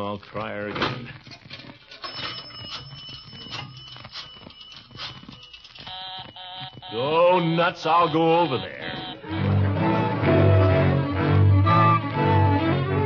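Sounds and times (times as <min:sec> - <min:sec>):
pulsing busy signal: 0:03.2 - 0:09.3.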